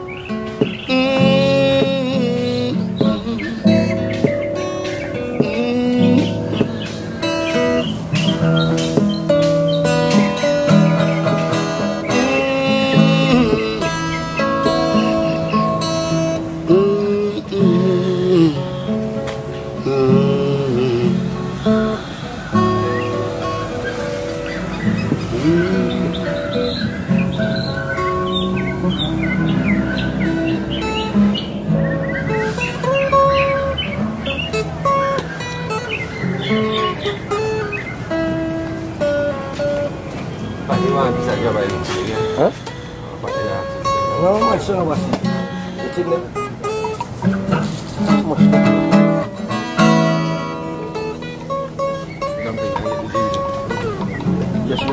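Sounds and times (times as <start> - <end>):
acoustic guitar picking: 0.0 - 54.9
birds chirping: 0.0 - 54.9.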